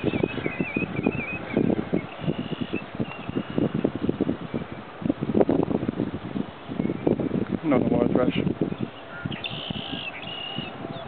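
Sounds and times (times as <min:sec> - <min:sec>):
bird calling: 0:00.0 - 0:03.8, 0:08.7 - 0:11.0.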